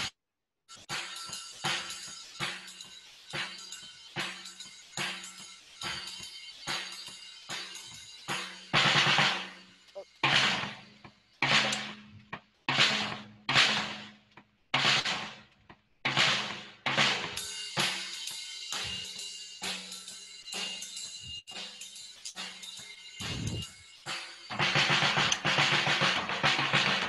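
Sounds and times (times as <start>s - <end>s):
drum strokes: 0.8s - 27.0s.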